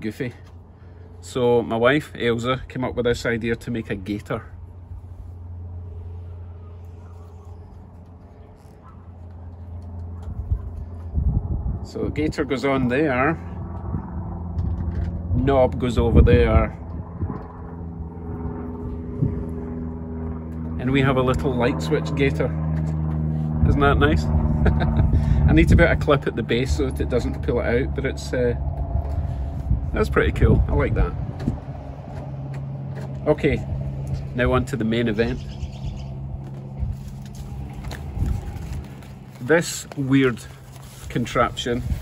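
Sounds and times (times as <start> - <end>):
engine humming: 0.0 - 42.0
low rumble: 2.6 - 21.2, 22.5 - 42.0.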